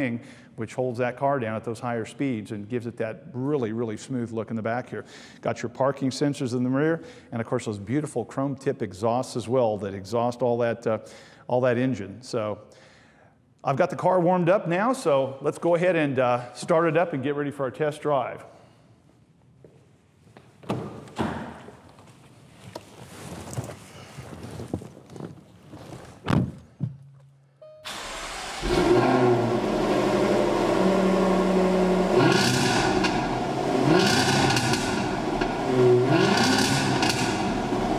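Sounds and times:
car engine revving: 27.9s - 37.9s.

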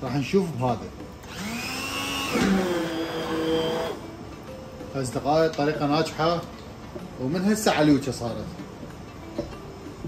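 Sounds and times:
immersion blender motor whine: 1.3s - 4.0s.

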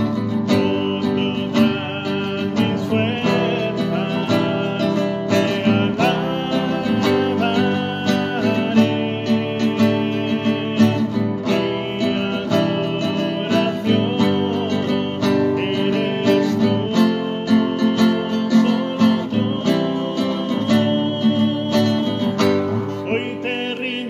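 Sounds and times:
acoustic guitar strumming: 0.0s - 24.0s.

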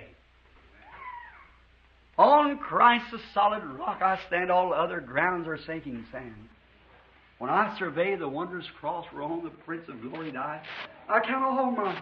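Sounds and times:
low recording hum: 0.0s - 12.0s
high-pitched vocal call: 0.8s - 1.6s.

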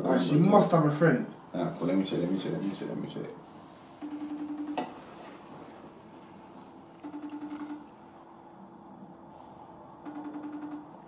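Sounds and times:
outgoing call ringing tone: 4.0s - 5.0s, 7.0s - 7.9s, 10.0s - 11.0s.

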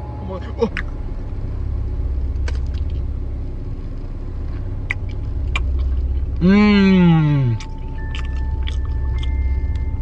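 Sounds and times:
car idling: 0.0s - 10.0s.

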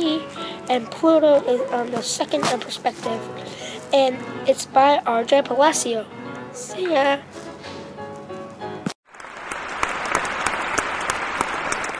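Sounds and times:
audience applause: 9.1s - 11.9s.

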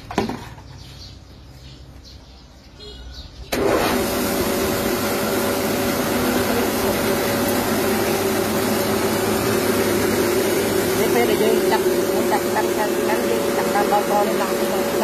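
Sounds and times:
rice mill whirring: 3.5s - 15.0s.

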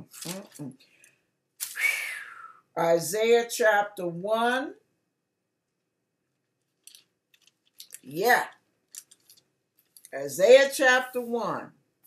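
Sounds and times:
thin pages turning: 0.0s - 0.7s.

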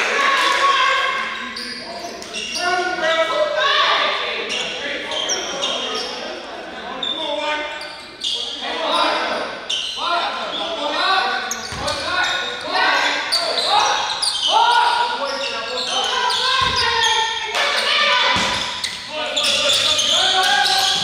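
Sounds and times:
players and spectators calling out: 0.0s - 21.0s.

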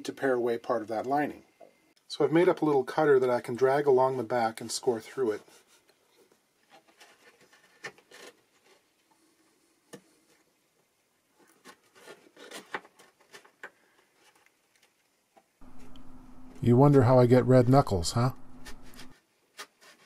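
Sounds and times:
blade scratching wood: 18.4s - 19.1s.

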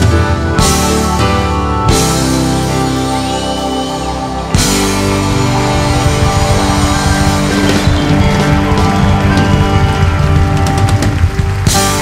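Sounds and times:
live rock band music: 0.0s - 12.0s.

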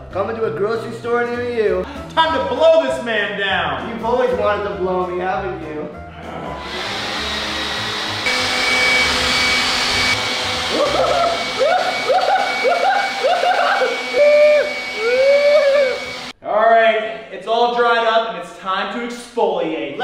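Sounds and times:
leaf blower running: 6.6s - 16.4s
person crying out: 10.7s - 16.1s.

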